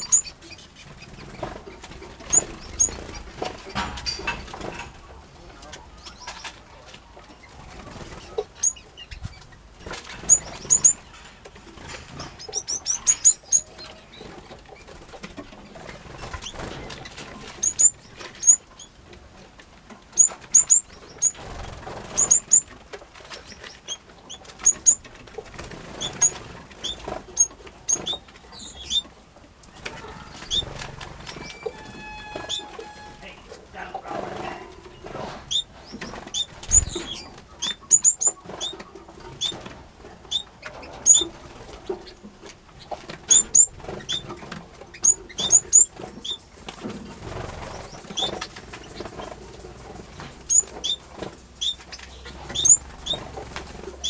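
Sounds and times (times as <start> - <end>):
finches chirping: 0.0 - 3.4, 7.4 - 11.1, 12.2 - 14.3, 15.6 - 19.0, 20.1 - 22.7, 23.4 - 29.1, 29.8 - 33.9, 35.5 - 39.6, 40.3 - 42.2, 42.8 - 46.4, 50.5 - 51.0, 51.6 - 53.3.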